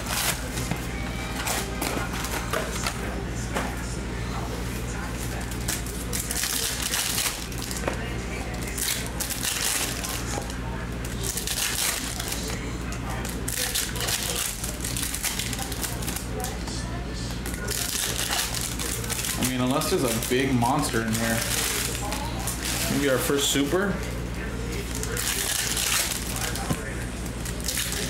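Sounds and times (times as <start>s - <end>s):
foil wrappers crinkling: 0.0s - 3.5s, 4.6s - 28.0s
steady low hum: 0.0s - 28.0s.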